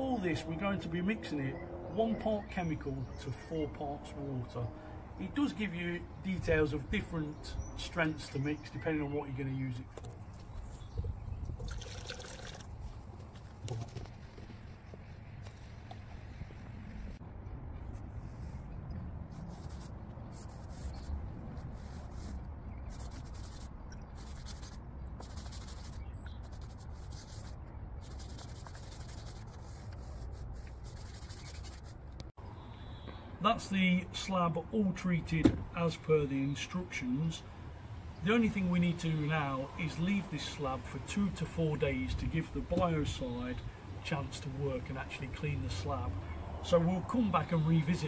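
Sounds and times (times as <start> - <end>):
liquid being poured: 11.5 - 12.8
paintbrush scrubbing concrete: 19.3 - 32.0.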